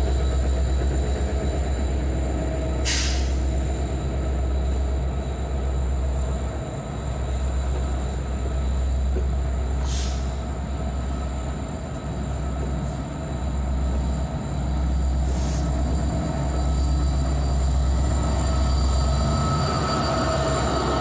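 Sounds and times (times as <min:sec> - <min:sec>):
locomotive engine rumble: 0:00.0 - 0:21.0
short air hisses: 0:02.8 - 0:03.5, 0:09.8 - 0:10.4, 0:15.2 - 0:15.8.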